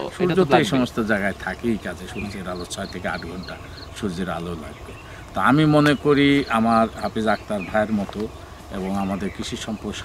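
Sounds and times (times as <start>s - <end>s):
man talking: 0.0s - 10.0s.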